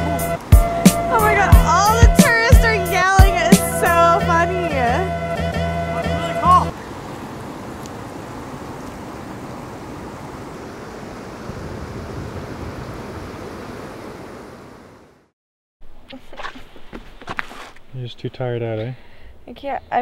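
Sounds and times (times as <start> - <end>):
river rapids rushing: 5.9 - 15.1
rustling: 16.0 - 18.0.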